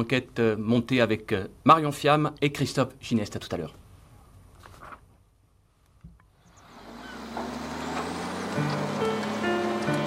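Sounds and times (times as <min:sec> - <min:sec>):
background music with held notes: 0:07.2 - 0:10.0.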